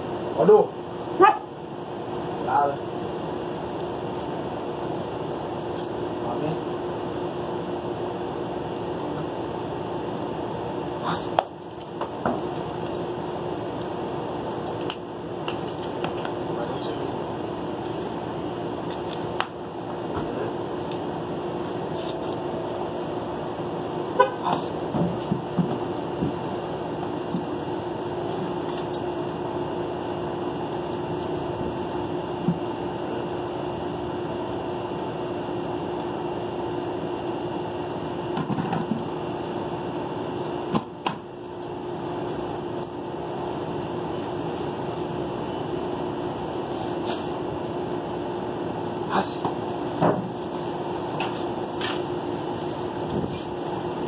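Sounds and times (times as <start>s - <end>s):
steady mechanical hum: 0.0s - 54.0s.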